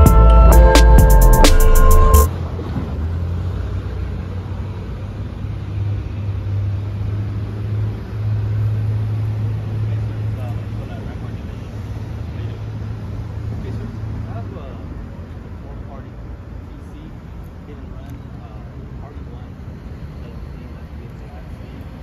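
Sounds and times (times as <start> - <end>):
music: 0.0 - 2.3
faint street noise: 0.0 - 22.0.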